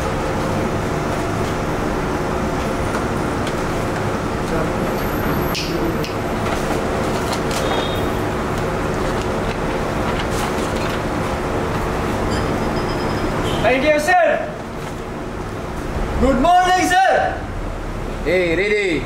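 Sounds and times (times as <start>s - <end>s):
workshop mechanical drone: 0.0s - 19.0s.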